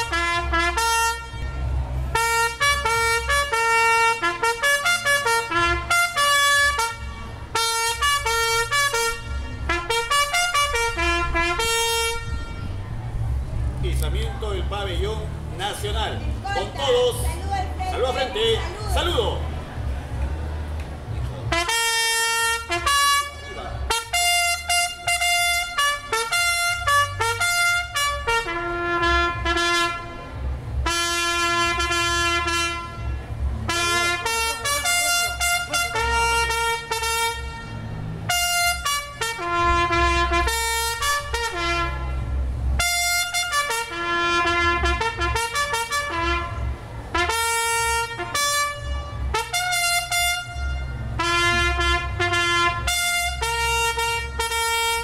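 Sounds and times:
solo trumpet call: 0.0 - 12.8, 21.5 - 30.1, 33.7 - 55.0.

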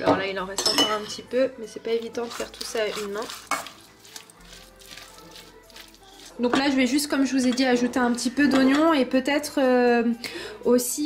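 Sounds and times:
quiet background music: 0.0 - 11.0
utensil scraping a steel bowl: 1.9 - 6.8.

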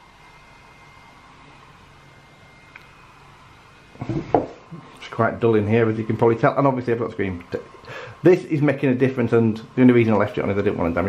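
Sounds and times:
faint high whine: 0.0 - 11.0
small click: 2.7 - 2.9.

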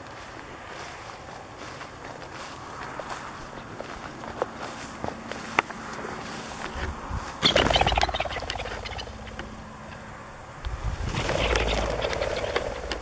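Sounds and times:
partridges wings flapping: 5.5 - 9.6, 10.7 - 13.0.

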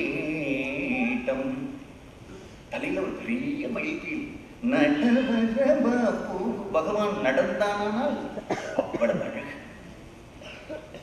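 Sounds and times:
man coughing: 8.3 - 9.6, 10.4 - 11.0.

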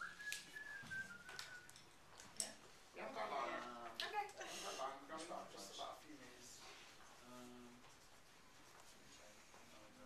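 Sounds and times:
person whistling: 0.0 - 1.8.

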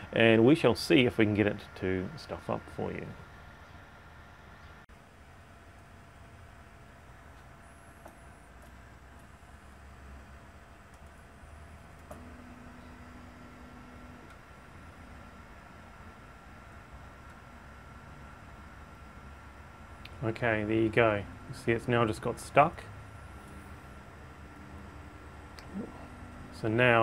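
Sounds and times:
printer motors and fan humming: 0.0 - 27.0.

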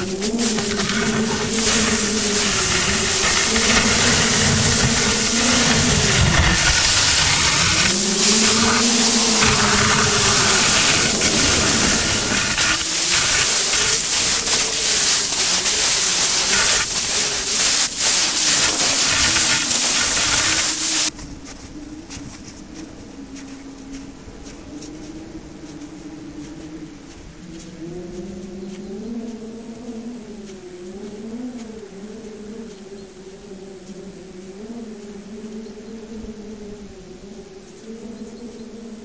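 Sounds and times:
wind on microphone: 0.0 - 39.0.

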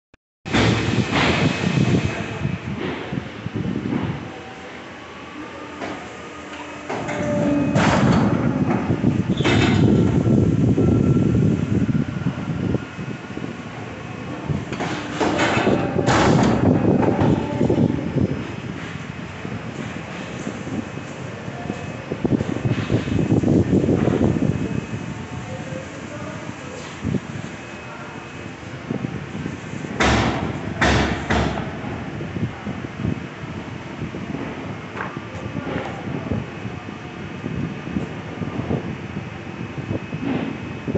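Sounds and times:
paper guillotine cutter rumbling: 14.2 - 21.1.

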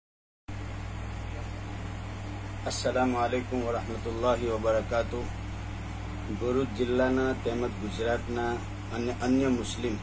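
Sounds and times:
room hum with hiss: 0.5 - 10.0.

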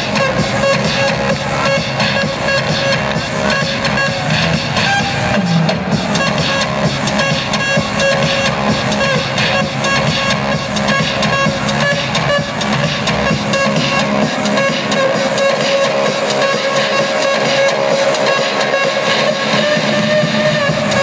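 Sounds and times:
loud electronic dance music: 0.0 - 21.0.

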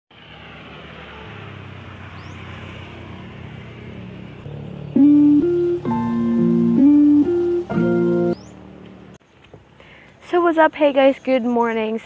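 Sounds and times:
road and wind noise: 0.1 - 12.0.

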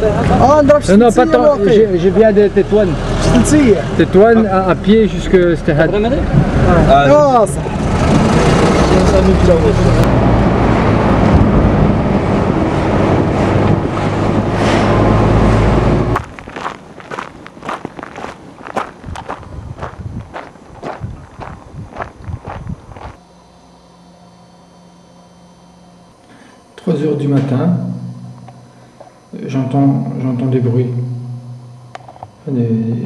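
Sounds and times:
car road and engine noise: 0.0 - 23.8
faint steady hum: 9.2 - 33.0
footsteps on gravel: 16.2 - 23.2.

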